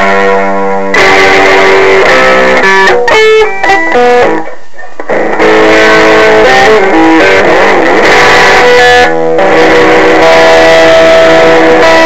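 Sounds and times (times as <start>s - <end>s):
loud electric guitar: 0.0s - 12.0s.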